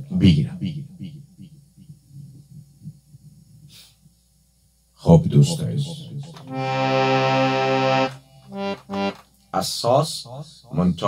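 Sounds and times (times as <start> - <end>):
man's voice: 5.1 - 6.4
harmonium notes: 6.4 - 9.3.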